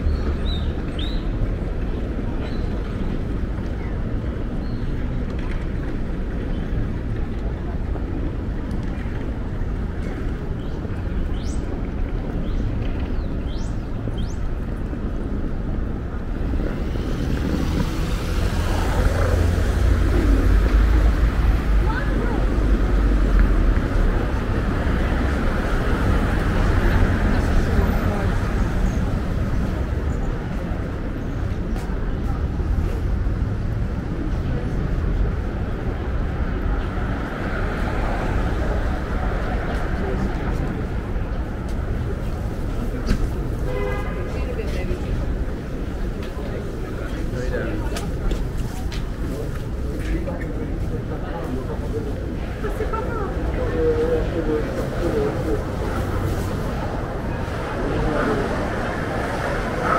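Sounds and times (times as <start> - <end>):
passersby talking: 0.0 - 59.9
street traffic noise: 0.0 - 59.9.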